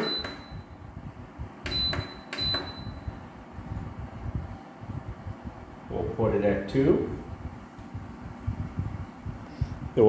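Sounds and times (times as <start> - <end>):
heater control panel beeps: 0.0 - 0.9, 1.5 - 3.4.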